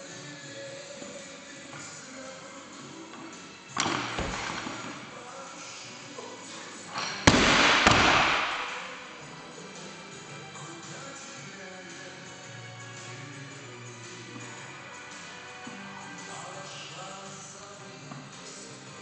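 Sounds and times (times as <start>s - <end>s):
barbell bouncing bang: 3.8s - 5.0s, 7.0s - 9.0s
barbell crashing on gym floor: 3.8s - 5.2s, 7.0s - 9.2s.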